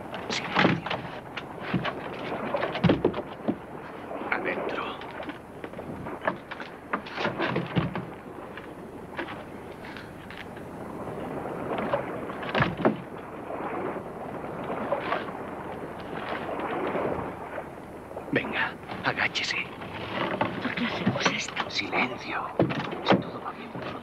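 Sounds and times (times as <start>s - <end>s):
film soundtrack hiss: 0.0s - 24.0s
hushed voice: 20.6s - 22.5s.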